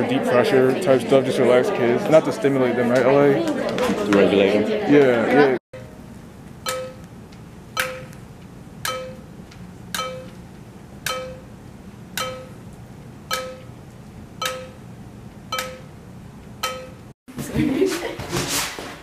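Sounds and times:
sharp percussive tick with ring: 6.6s - 7.1s, 7.8s - 8.2s, 8.8s - 9.3s, 9.9s - 10.4s, 11.0s - 11.5s, 12.2s - 12.6s, 13.3s - 13.8s, 14.4s - 14.8s, 15.5s - 15.9s, 16.6s - 17.1s.

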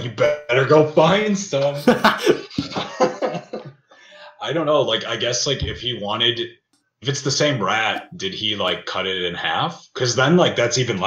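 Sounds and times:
people laughing: 0.0s - 6.2s.

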